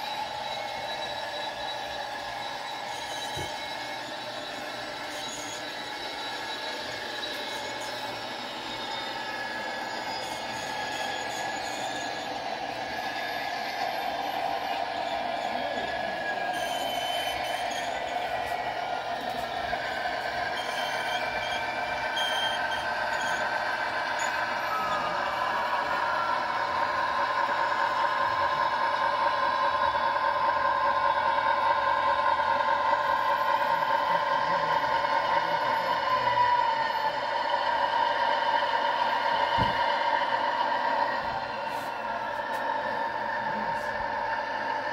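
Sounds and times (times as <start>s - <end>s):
model train motors humming and whining: 0.0s - 44.9s.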